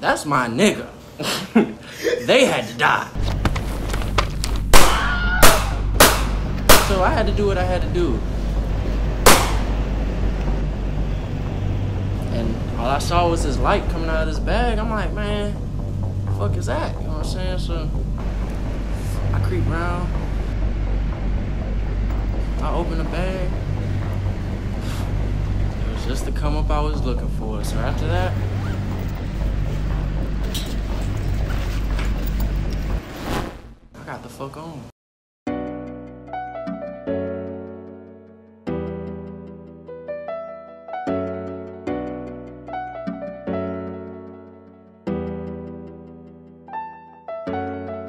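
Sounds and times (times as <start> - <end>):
low musical drone: 3.2 - 33.0
steady low rumble: 3.2 - 33.0
gunshots with echo: 4.7 - 7.1, 9.3 - 9.8.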